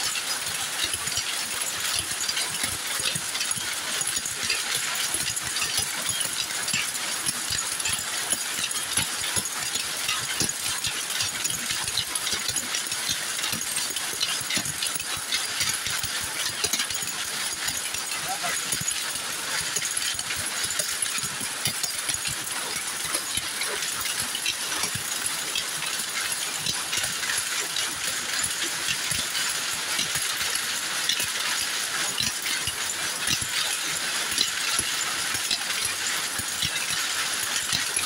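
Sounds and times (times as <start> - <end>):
power looms clattering: 0.1 - 38.0.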